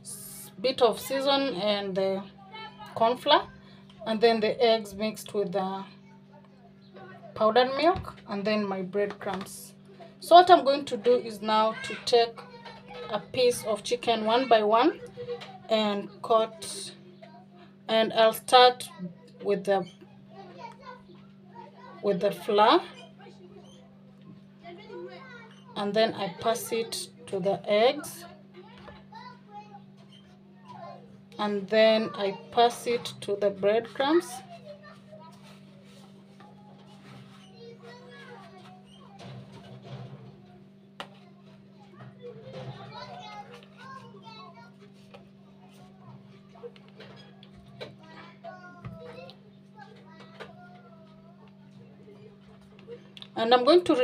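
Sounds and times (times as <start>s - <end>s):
children talking and playing: 0.0s - 54.0s.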